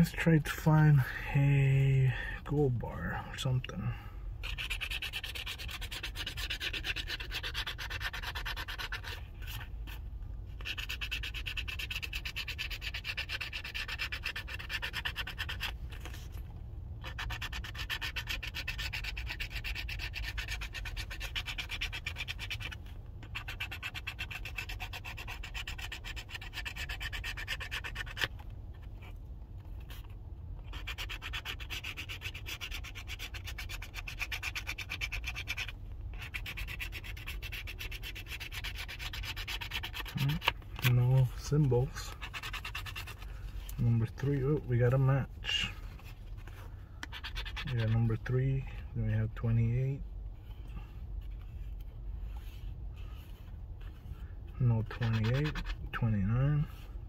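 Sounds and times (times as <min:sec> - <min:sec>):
scratch-off ticket scraping: 0:03.4 - 0:16.4, 0:17.0 - 0:29.1, 0:29.7 - 0:49.8, 0:51.2 - 0:56.7.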